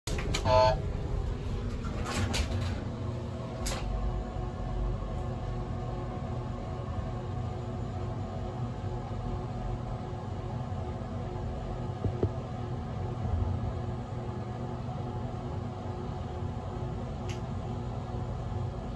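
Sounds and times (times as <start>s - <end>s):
hydraulic pump hum: 0.1s - 1.6s
elevator button beep: 0.4s - 0.8s.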